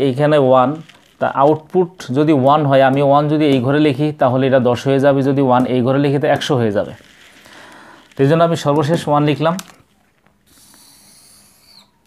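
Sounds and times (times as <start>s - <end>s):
marker squeak: 10.0s - 12.0s.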